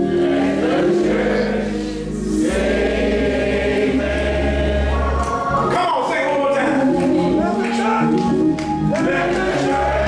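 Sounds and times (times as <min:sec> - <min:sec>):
group singing gospel: 0:00.0 - 0:10.0.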